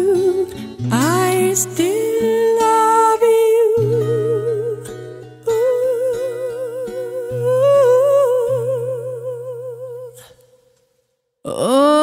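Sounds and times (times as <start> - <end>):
woman singing with vibrato: 0.0 - 10.4, 11.4 - 12.0.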